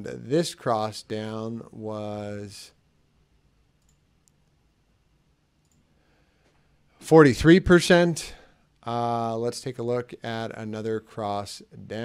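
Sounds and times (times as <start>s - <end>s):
faint room hiss: 0.0s - 12.0s
computer mouse clicks: 3.8s - 4.6s, 5.6s - 5.9s.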